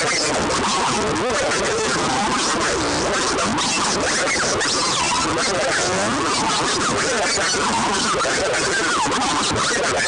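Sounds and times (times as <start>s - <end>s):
distorted electric guitar noise: 0.0s - 10.0s.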